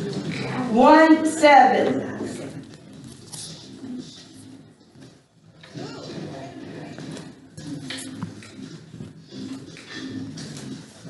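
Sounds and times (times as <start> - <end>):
faint indistinct speech: 5.6 - 8.4.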